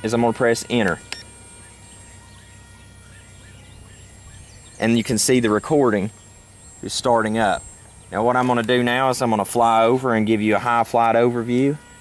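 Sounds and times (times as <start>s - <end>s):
faint bird chirps: 1.5s - 7.0s.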